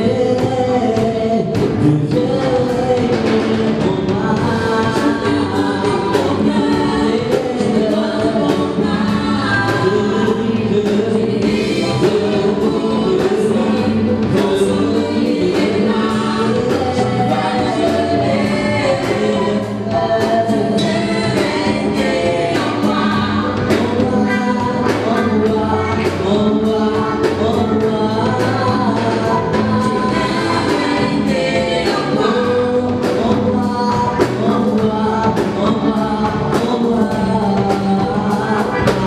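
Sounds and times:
drum kit beat: 0:00.0 - 0:39.0
keyboard: 0:00.0 - 0:39.0
voices singing in harmony: 0:00.0 - 0:39.0.

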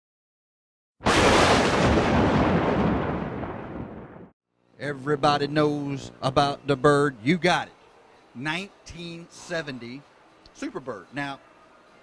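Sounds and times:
explosion-like boom: 0:01.0 - 0:04.4.

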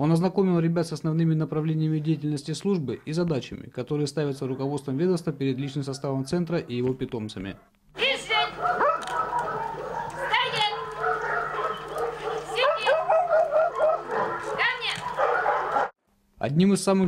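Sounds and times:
dog barking and yelping: 0:05.5 - 0:06.4, 0:07.5 - 0:16.0
people's voices: 0:08.0 - 0:15.2.

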